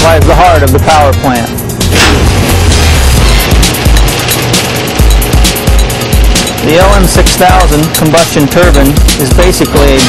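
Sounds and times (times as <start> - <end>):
music with heavy driving beat: 0.0 - 10.0.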